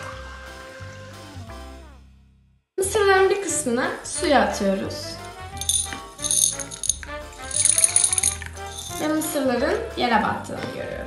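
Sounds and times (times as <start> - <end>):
popcorn kernels rattling into glass: 5.5 - 9.3.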